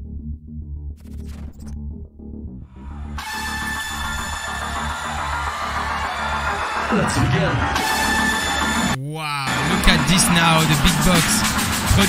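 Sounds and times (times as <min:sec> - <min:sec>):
low bass pulse: 0:00.0 - 0:04.2.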